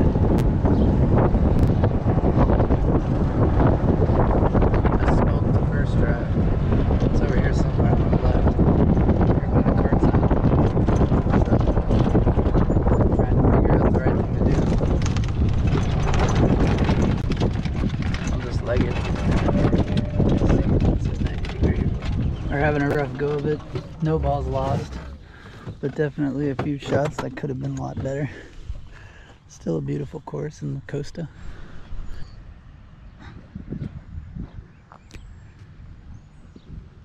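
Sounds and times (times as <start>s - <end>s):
golf cart running: 0.0s - 29.0s
wind buffeting microphone: 0.0s - 37.0s.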